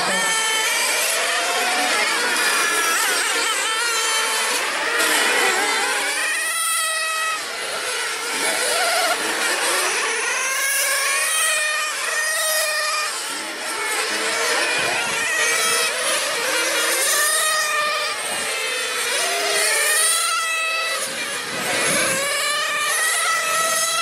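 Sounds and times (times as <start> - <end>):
model car engines whining: 0.0 - 24.0.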